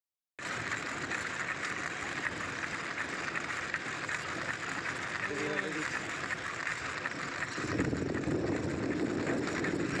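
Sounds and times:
wind and road noise: 0:00.4 - 0:10.0.

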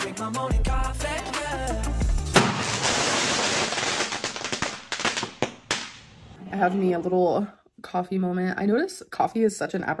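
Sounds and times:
fireworks crackling and popping: 0:02.3 - 0:06.4.

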